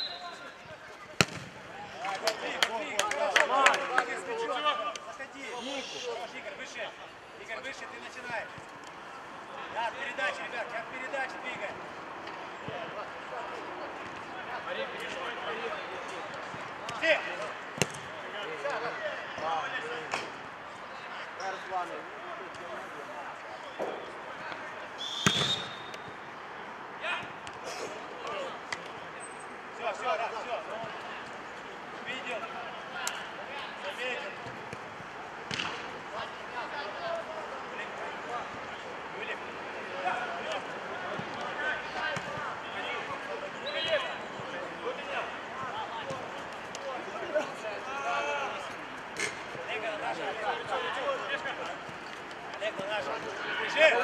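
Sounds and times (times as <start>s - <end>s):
ball being kicked: 1.2s - 1.6s, 25.2s - 25.6s
players shouting: 35.5s - 51.9s, 52.5s - 54.0s.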